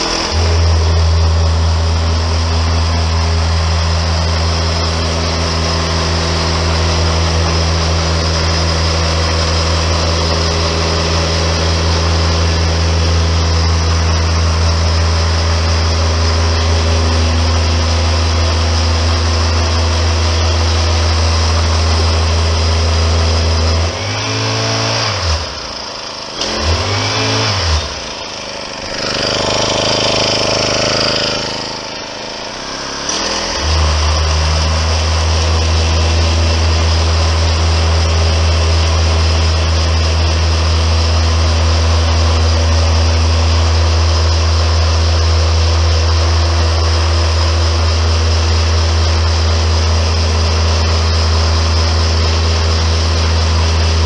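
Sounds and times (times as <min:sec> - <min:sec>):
small petrol engine revving: 0:00.0 - 0:54.0.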